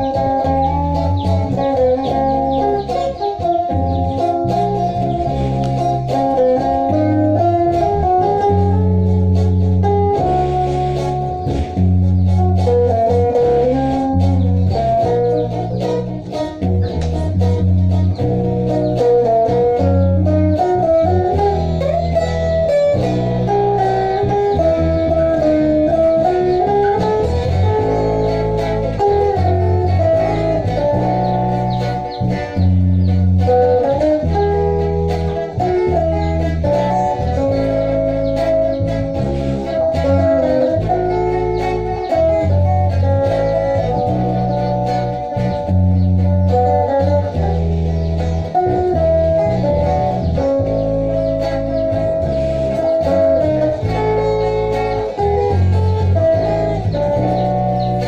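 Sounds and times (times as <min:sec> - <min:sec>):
bass guitar: 0:00.0 - 0:58.0
fingerstyle lead electric guitar: 0:00.0 - 0:58.0
strummed rhythm electric guitar: 0:00.0 - 0:58.0.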